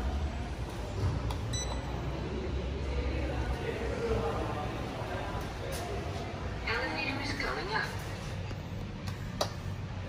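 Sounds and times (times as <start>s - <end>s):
short electronic beep: 1.5s - 1.9s.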